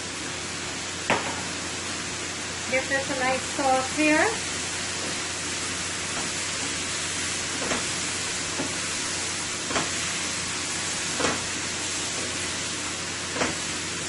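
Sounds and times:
vegetables sizzling in a skillet: 0.0s - 14.0s.

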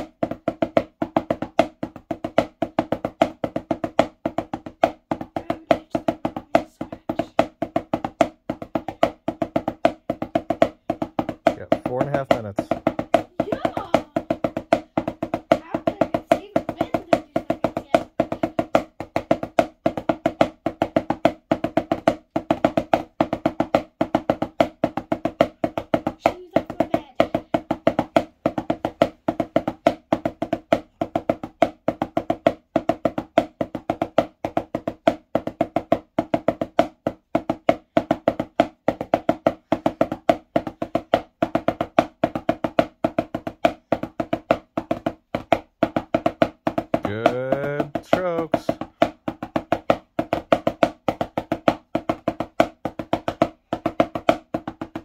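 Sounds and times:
drumsticks tapping practice pad: 0.0s - 55.0s.

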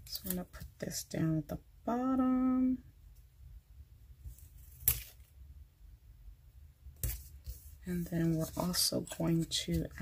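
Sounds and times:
faint room hum: 0.0s - 10.0s
paper rustle: 7.0s - 10.0s.

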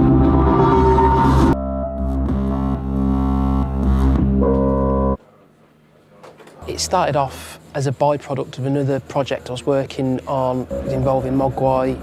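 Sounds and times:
synthesizer drone chord: 0.0s - 5.2s, 10.5s - 12.0s.

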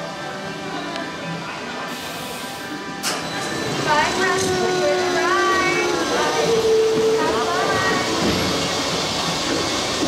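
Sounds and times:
ride car rolling on track: 3.0s - 10.0s.

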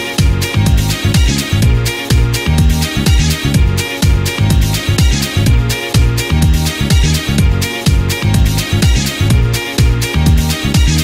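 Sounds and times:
sliding bass line: 0.0s - 11.0s
upbeat dance music: 0.0s - 11.0s.

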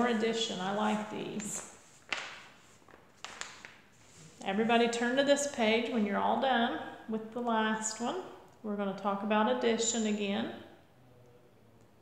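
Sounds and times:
paper pages rustling: 0.0s - 4.4s.

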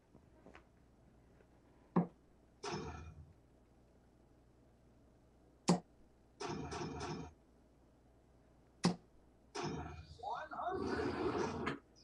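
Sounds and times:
voice-like sound: 10.0s - 11.7s.

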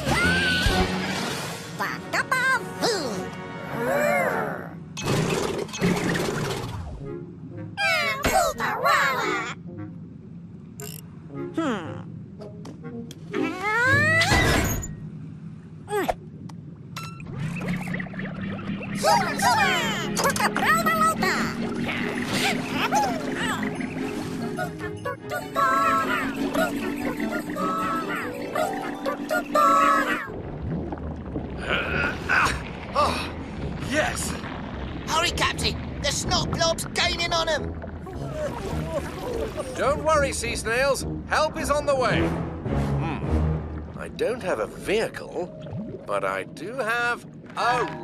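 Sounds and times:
faint background music: 0.0s - 4.9s, 10.8s - 14.6s, 19.0s - 30.3s, 35.1s - 48.0s
squeaky cartoon gibberish voices: 7.8s - 9.6s, 13.3s - 14.5s, 19.0s - 23.8s, 24.4s - 30.3s
low underwater rumble: 29.6s - 40.3s, 42.4s - 46.6s.

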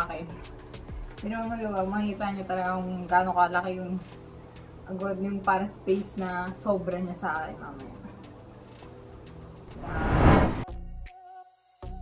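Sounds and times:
woman speaking: 0.0s - 0.4s, 1.2s - 4.1s, 4.9s - 8.1s.

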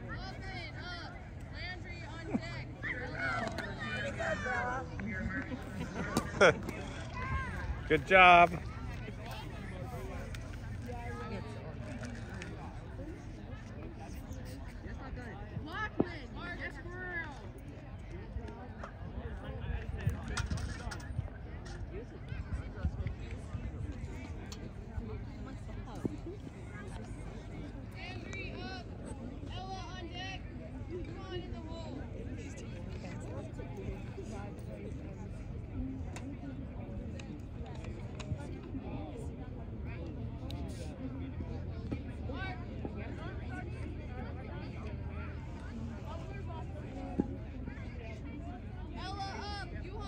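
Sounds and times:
distant people talking: 0.0s - 50.0s
people chattering: 0.0s - 50.0s.

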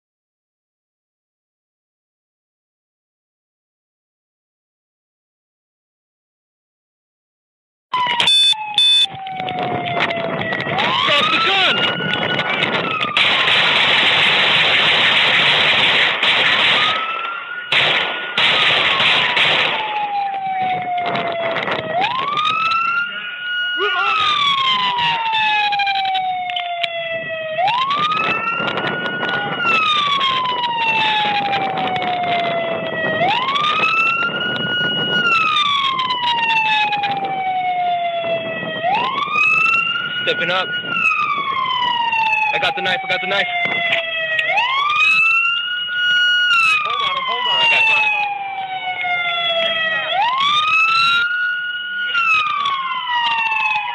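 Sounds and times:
police siren wailing: 7.9s - 53.9s.

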